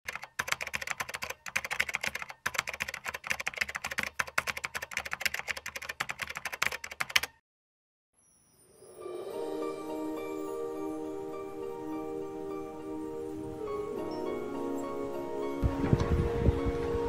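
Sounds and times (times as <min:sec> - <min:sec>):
keyboard key clicks: 0:00.1 - 0:07.4.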